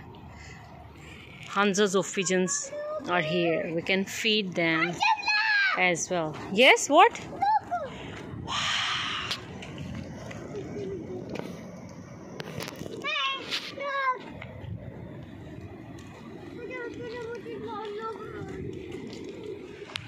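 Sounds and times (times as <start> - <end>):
child calling: 2.2 - 3.7, 5.0 - 5.8, 7.3 - 8.6.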